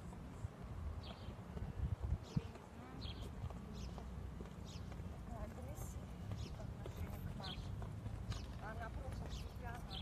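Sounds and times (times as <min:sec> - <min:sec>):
faint indistinct voices: 0:01.6 - 0:10.0.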